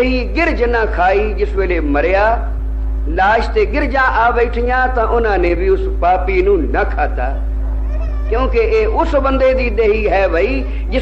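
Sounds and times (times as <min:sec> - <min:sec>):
man preaching: 0:00.0 - 0:07.5, 0:08.3 - 0:11.0
steady low hum: 0:00.0 - 0:11.0.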